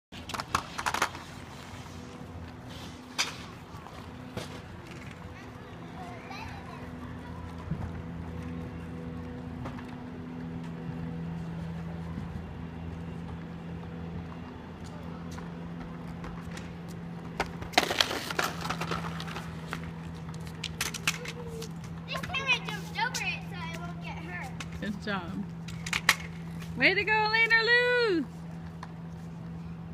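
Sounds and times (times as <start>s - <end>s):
steady low street hum: 0.1s - 29.9s.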